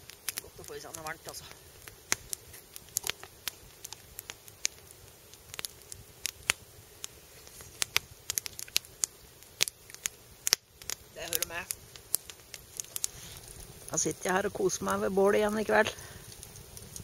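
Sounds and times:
campfire crackling and popping: 0.0s - 17.0s.

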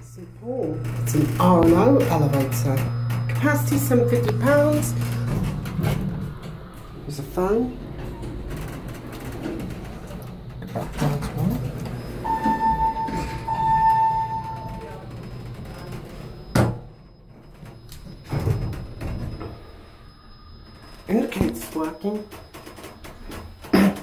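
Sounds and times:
emergency phone electronic tone: 0.0s - 8.2s, 11.6s - 23.6s.

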